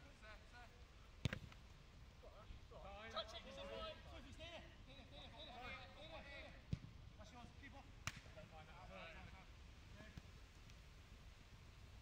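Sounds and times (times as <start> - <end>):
football kick thuds: 1.2 - 1.6
players shouting and chatting: 2.2 - 9.4.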